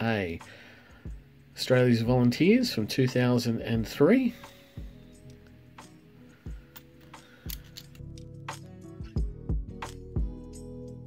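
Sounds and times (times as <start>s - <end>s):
soft background music: 0.0s - 11.0s
coins clinking in hand: 6.6s - 8.6s.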